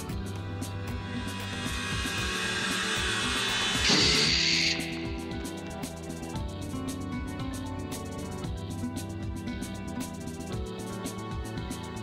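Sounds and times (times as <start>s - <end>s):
suspenseful film score: 0.0s - 12.0s
rising hiss: 0.6s - 6.3s
loud harsh screech: 1.2s - 5.3s.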